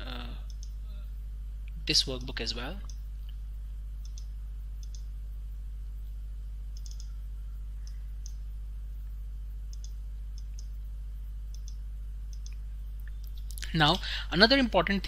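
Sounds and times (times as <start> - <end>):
low electrical hum: 0.0 - 15.0
computer mouse clicking: 0.5 - 0.8, 4.0 - 5.1, 6.7 - 7.2, 7.8 - 8.4, 9.7 - 10.8, 11.5 - 13.5.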